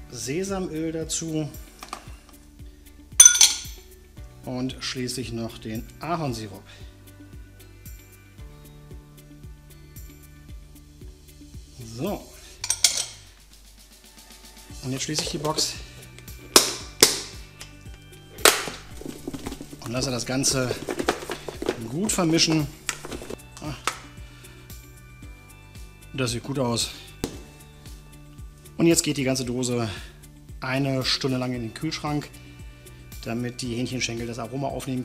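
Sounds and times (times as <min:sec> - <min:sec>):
faint background music: 0:00.0 - 0:35.0
glass bowl clinking: 0:03.2 - 0:03.8, 0:12.6 - 0:13.3
plastic lid snapping shut: 0:18.4 - 0:19.6.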